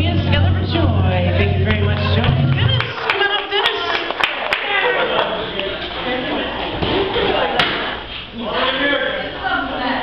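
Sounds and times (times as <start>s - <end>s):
karaoke backing track: 0.0s - 4.1s
people talking: 0.0s - 10.0s
hand claps: 1.7s - 4.8s.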